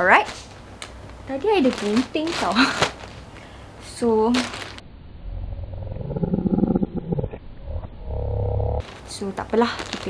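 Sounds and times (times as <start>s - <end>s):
low animal growl: 5.2s - 8.8s.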